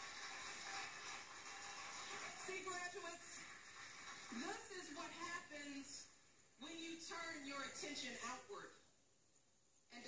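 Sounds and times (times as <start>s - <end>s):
audience applauding through speaker: 0.0s - 5.3s.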